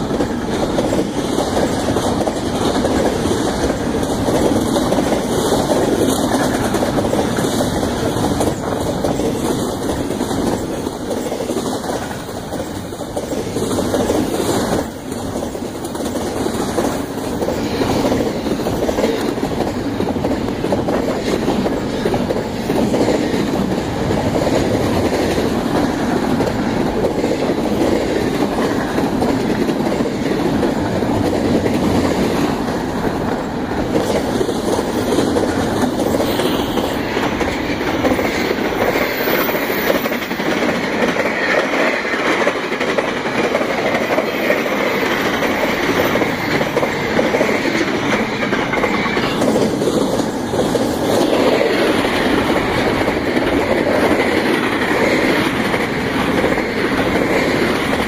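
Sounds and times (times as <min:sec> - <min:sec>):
steel wheels rolling on rails: 0:00.0 - 0:58.0.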